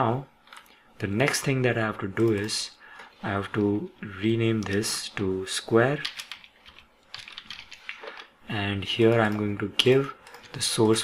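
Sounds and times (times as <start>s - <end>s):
computer keyboard typing: 6.0s - 8.3s.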